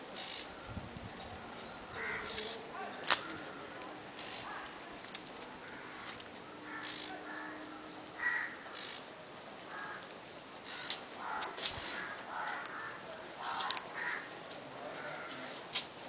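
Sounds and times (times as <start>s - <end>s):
harsh bird calls: 0.1s - 4.7s, 5.7s - 14.3s, 15.0s - 16.0s.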